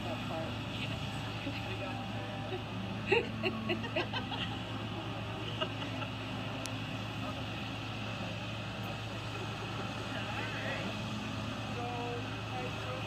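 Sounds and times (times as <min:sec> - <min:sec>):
constant low hum: 0:00.0 - 0:13.0
faint murmured voices: 0:00.0 - 0:13.0.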